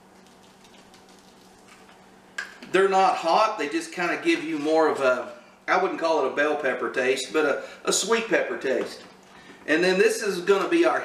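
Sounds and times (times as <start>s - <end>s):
spice shaken onto paper plate: 0.2s - 1.9s.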